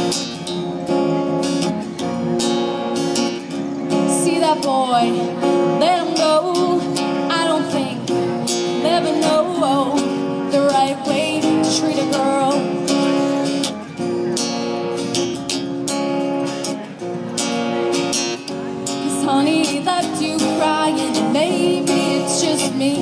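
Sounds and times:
acoustic guitar strumming: 0.0s - 23.0s
woman singing: 4.1s - 13.2s, 18.9s - 23.0s.

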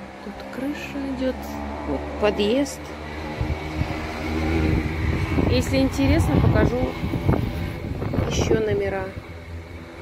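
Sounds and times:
wind buffeting microphone: 1.6s - 10.0s.

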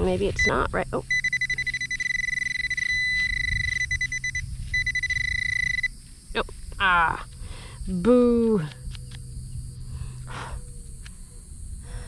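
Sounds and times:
metal detector steady tone: 0.0s - 6.4s
low buzz: 0.0s - 12.0s.

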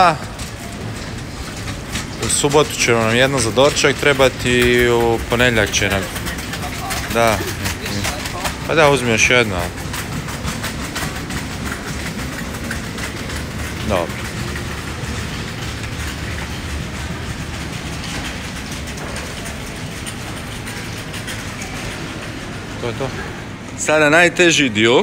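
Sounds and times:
low rumbling refrigerated cases: 0.0s - 25.0s.

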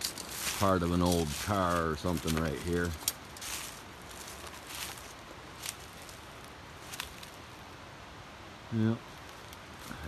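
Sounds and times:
dry leaves crunching underfoot: 0.0s - 7.7s
low outdoor hiss: 0.0s - 10.0s.

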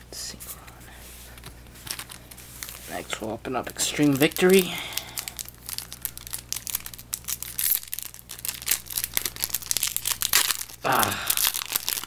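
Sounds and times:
foil wrapper crinkling: 1.7s - 12.0s.

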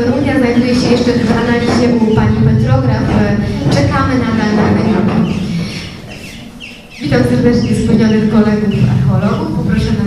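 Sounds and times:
woman's amplified speech: 0.0s - 6.0s, 7.0s - 10.0s.

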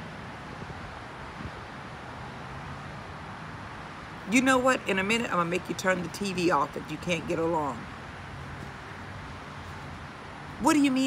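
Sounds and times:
distant road traffic hum: 0.0s - 11.0s.

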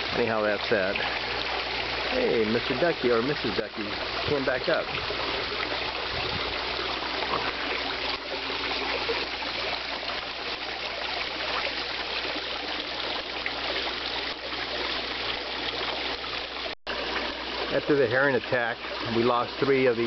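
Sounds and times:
waterfall splashing into pond: 0.0s - 20.0s.

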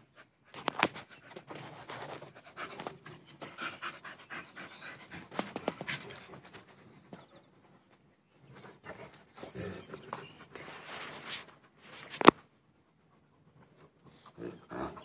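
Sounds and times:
dogs panting: 0.0s - 11.9s, 12.5s - 15.0s.

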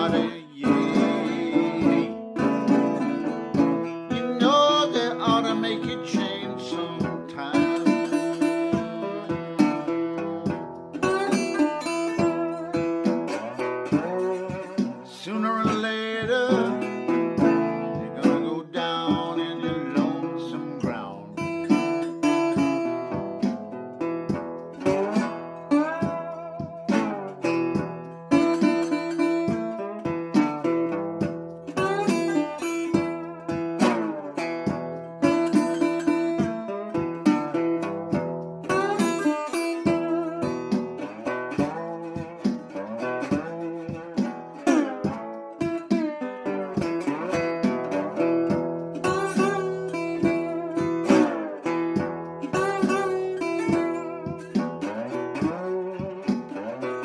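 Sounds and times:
slide resonator guitar: 0.0s - 57.0s.

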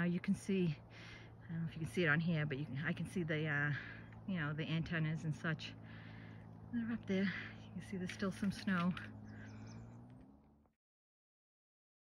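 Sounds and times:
low steady hum: 0.0s - 10.7s.

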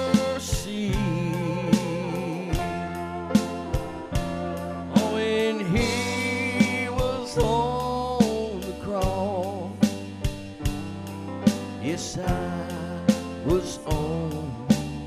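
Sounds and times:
piano and band: 0.0s - 15.0s
steady drum beat: 0.0s - 15.0s.

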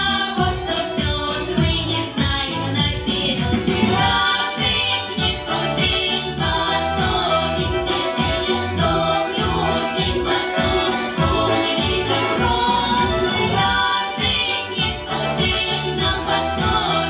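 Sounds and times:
girls singing into microphones: 0.0s - 17.0s
instrumental backing track: 0.0s - 17.0s.

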